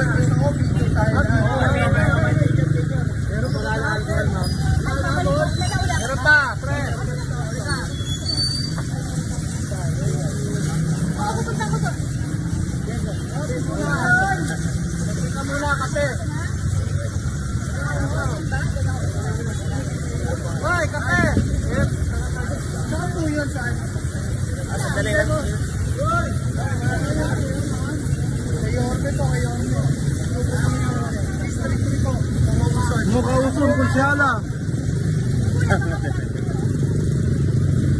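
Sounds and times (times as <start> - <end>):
low rumble of street traffic: 0.0 - 37.9
people talking over one another: 0.0 - 37.9.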